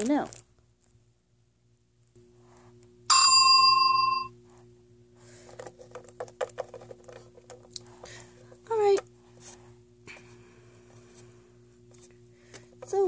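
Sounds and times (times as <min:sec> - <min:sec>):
low steady hum: 0:00.0 - 0:13.0
bell ding: 0:03.1 - 0:04.3
plastic toys tapping on wooden shelf: 0:05.6 - 0:07.7.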